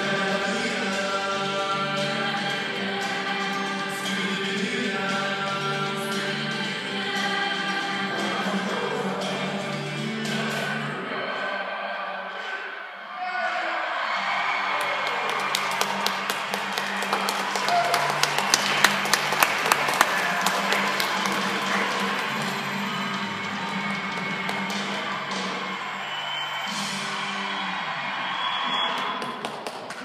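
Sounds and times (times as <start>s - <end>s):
praise band music: 0.0s - 11.0s, 15.0s - 29.8s.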